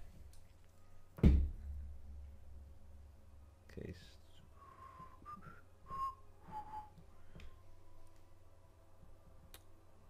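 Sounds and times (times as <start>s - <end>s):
person whistling short notes: 4.6s - 7.3s.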